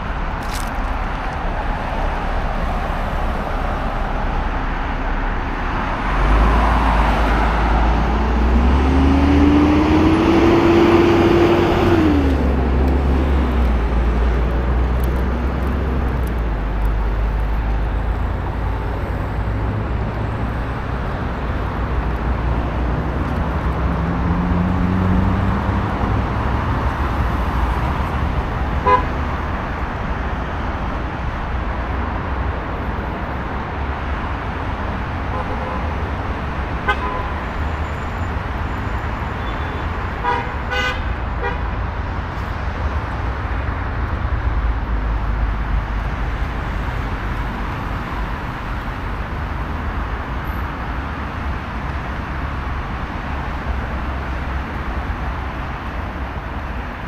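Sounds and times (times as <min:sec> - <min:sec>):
road traffic rumble: 0:00.0 - 0:57.0
vehicle accelerating past: 0:05.8 - 0:28.3.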